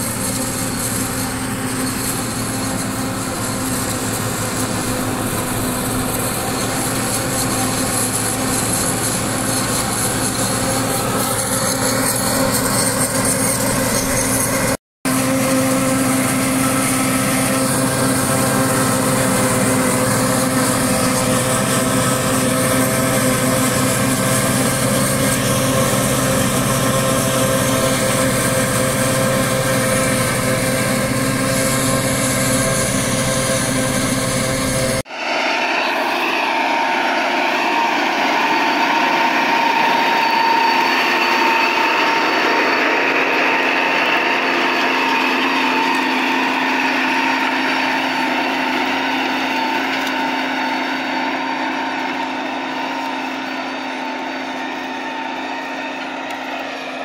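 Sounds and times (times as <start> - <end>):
tractor engine under load: 0.0 - 57.0
tractor pulling disc harrow: 0.0 - 57.0.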